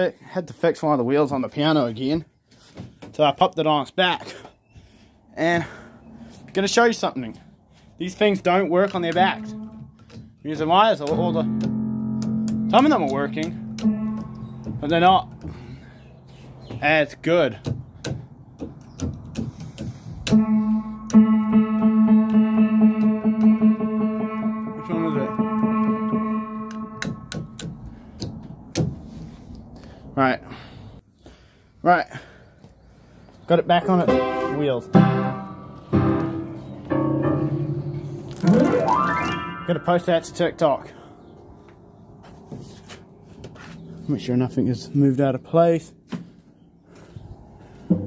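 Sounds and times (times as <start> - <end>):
piano action clicks and knocks: 8.8 - 15.6, 21.1 - 24.5, 25.4 - 28.9
piano note ringing: 8.9 - 15.3, 20.3 - 27.6, 33.9 - 40.9.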